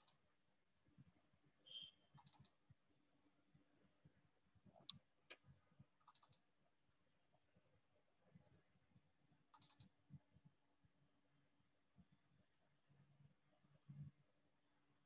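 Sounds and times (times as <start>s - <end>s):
faint computer clicks: 0.0s - 0.2s, 1.7s - 2.6s, 4.8s - 6.5s, 9.5s - 10.0s.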